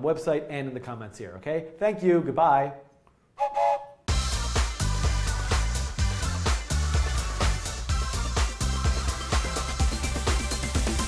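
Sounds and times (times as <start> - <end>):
toy train whistle: 3.4 - 4.0
upbeat theme music: 4.1 - 11.0.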